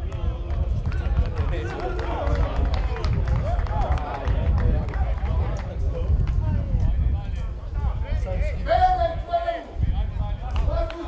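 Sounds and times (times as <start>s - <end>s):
steady low rumble: 0.0s - 9.2s
players shouting: 0.9s - 5.3s.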